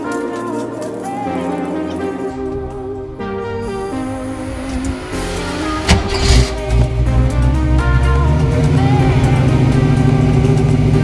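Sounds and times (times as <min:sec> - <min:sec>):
background music: 0:00.0 - 0:11.0
car engine starting and droning: 0:02.5 - 0:11.0.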